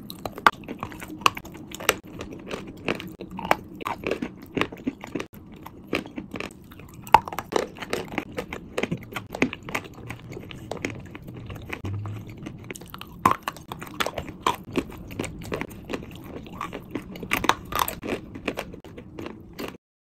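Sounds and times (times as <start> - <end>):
chalk crunching while chewed: 0.0 - 19.8.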